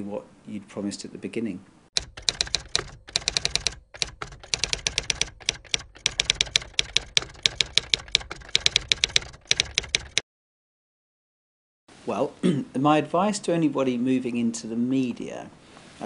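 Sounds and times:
rapid keyboard typing: 2.0 - 10.2.

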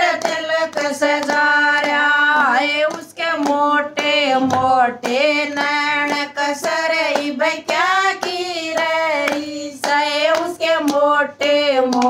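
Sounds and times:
hand claps: 0.0 - 12.0
women singing devotional song: 0.0 - 12.0.

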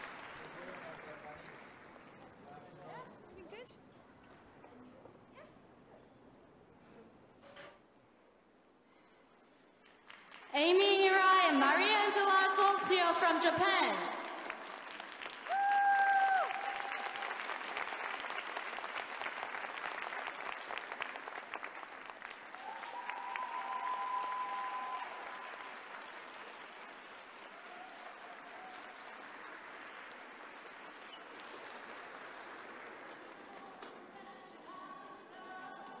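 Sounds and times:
audience applauding: 0.0 - 2.7, 9.8 - 11.0, 13.0 - 34.0.

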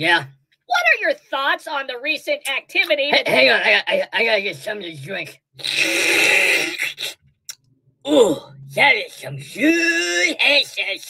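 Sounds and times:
person slurping a drink: 5.6 - 7.2.

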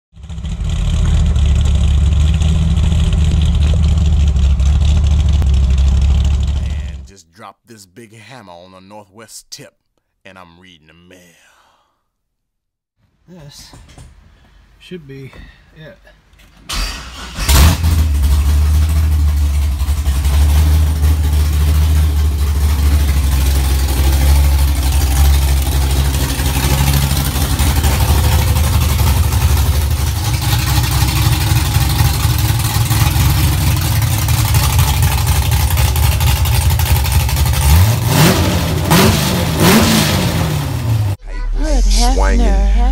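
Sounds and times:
car engine idling: 0.2 - 7.0, 16.7 - 42.9.

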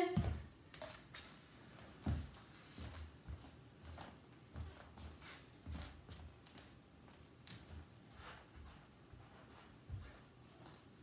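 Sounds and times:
footsteps on wood floor: 0.0 - 10.9.

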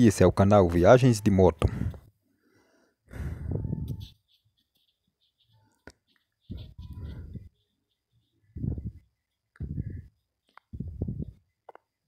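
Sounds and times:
breathy exhale: 1.7 - 3.5.

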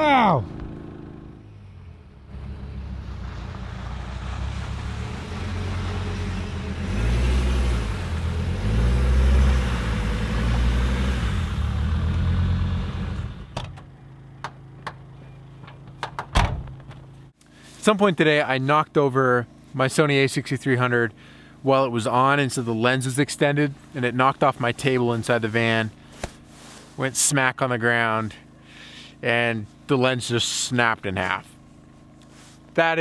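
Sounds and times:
vehicle engine running: 0.0 - 27.0, 27.6 - 33.0
thump: 16.0 - 17.0.

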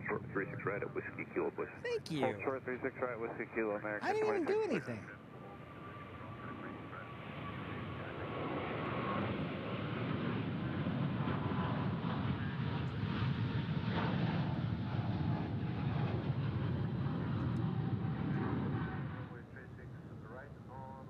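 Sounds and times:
faint engine whine: 0.0 - 21.0.

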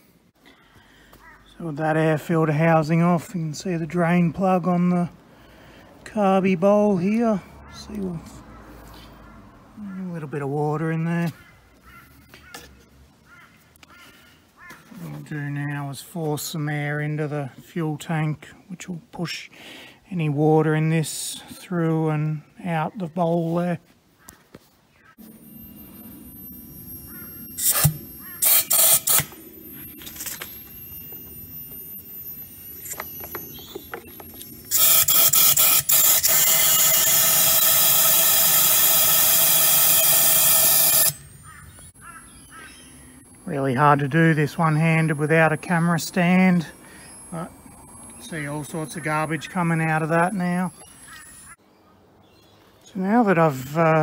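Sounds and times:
faint bird calls: 0.5 - 1.6, 11.3 - 15.2, 24.1 - 28.6, 41.4 - 43.5, 46.7 - 52.8.

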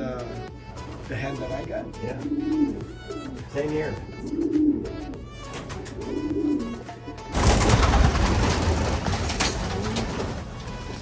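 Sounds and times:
pigeons cooing: 0.8 - 11.0.

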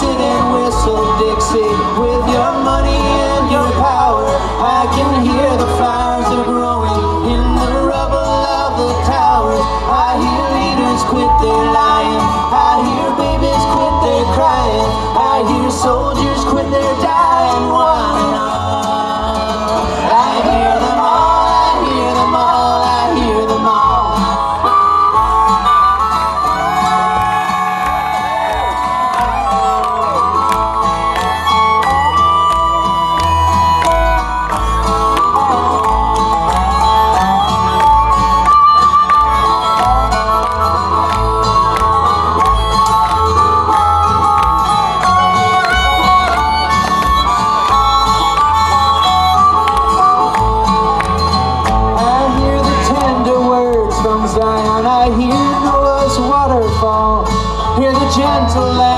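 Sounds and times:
acoustic guitar: 0.0 - 58.9
banjo: 0.0 - 58.9
harmonica with bending notes: 0.0 - 58.9
upright bass: 0.0 - 58.9.

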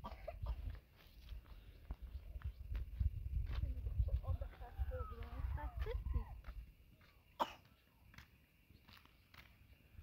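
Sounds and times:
short cough: 0.0 - 0.7, 7.4 - 7.7.

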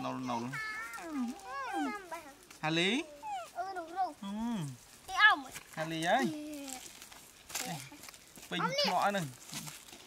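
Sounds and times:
baby monkey whimpering calls: 3.0 - 3.7.

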